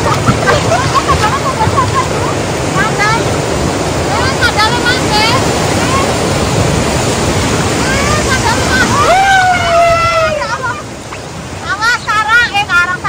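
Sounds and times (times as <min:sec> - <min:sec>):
white water rushing over rocks: 0:00.0 - 0:13.0.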